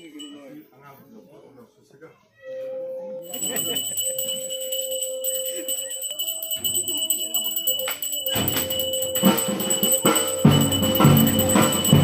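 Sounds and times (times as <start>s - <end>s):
bells ringing: 0.0s - 0.7s, 3.2s - 12.0s
deep drumbeats: 8.4s - 12.0s.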